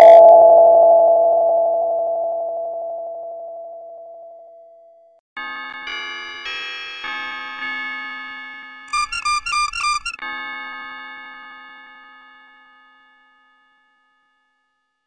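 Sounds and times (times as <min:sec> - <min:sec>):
electronic sustained chord: 0:09.0 - 0:10.2.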